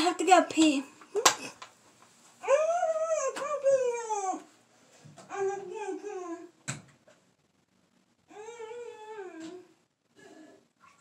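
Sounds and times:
dog whining: 8.3s - 11.0s.

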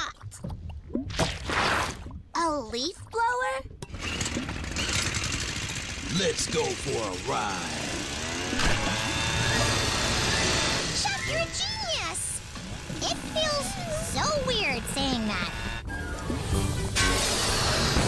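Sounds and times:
leaf blower engine running: 3.9s - 15.8s
background music: 14.6s - 18.0s.

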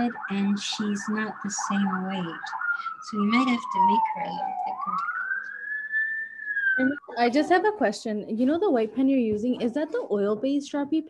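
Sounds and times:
siren wailing: 0.0s - 8.2s.

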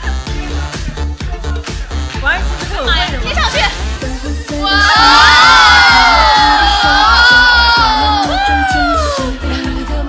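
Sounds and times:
pop dance music: 0.0s - 10.0s
young women shouting together: 4.6s - 9.2s.

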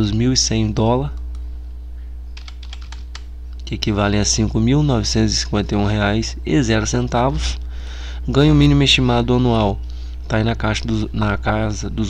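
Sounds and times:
low hum: 0.0s - 12.0s
keyboard typing: 2.4s - 3.3s.

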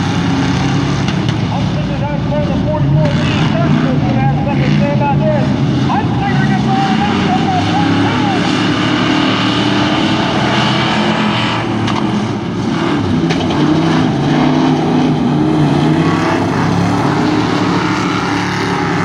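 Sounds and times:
race car engines droning: 0.0s - 19.0s.

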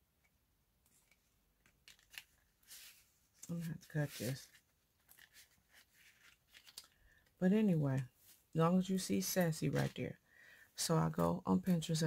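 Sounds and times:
paper rustling: 0.9s - 7.3s, 9.7s - 10.0s.

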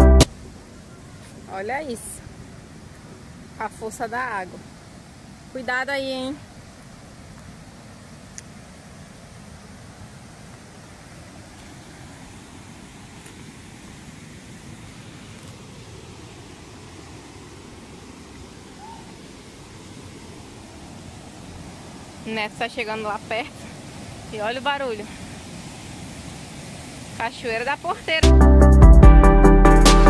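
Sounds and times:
waterfall rapids rushing: 0.4s - 28.3s.

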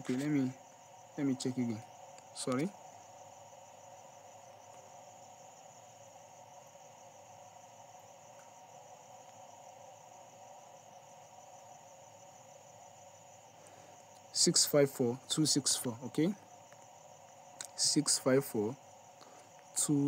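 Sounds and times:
faint background hum: 0.0s - 20.0s.

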